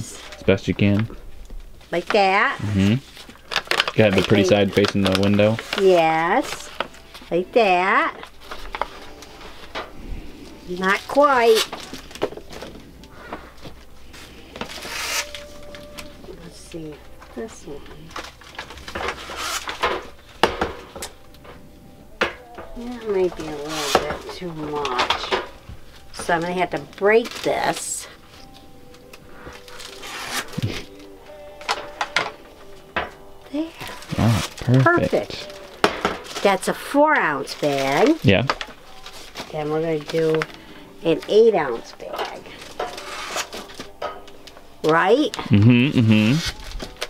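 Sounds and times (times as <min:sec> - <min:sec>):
plastic bag rustling: 0:00.0 - 0:45.6, 0:46.4 - 0:47.0
quiet background music: 0:00.0 - 0:47.0.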